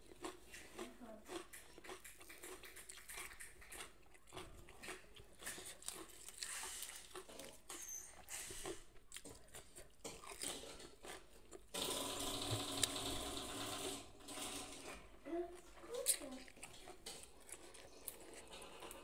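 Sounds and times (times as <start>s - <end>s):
mouth chewing food: 0.0s - 19.0s.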